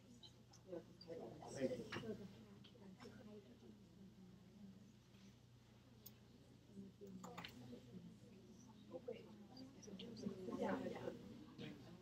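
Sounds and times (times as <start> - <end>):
students talking quietly: 0.0 - 12.0.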